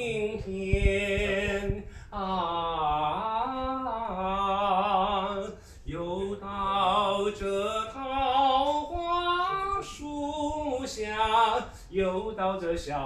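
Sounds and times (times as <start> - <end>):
man singing a slow song: 0.0 - 13.0.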